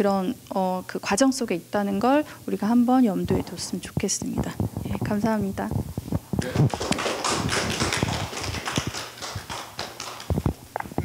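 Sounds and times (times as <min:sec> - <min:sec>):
small group applauding: 0:06.4 - 0:10.6.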